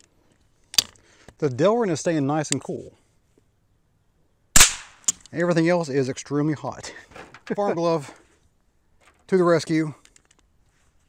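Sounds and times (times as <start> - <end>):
suppressed rifle shot: 4.6 - 5.2.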